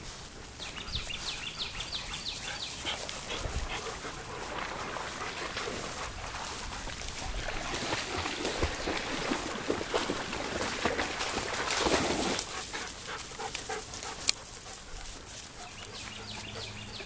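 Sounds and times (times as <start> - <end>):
rustling of vegetation: 0.0 - 17.0
dog panting: 0.7 - 7.6, 12.5 - 17.0.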